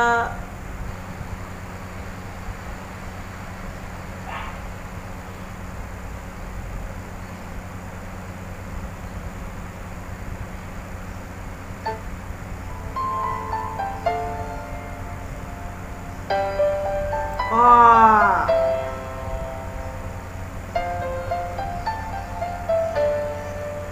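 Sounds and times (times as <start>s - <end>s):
low hum with hiss: 0.0s - 23.9s
brief tone: 11.9s - 16.4s.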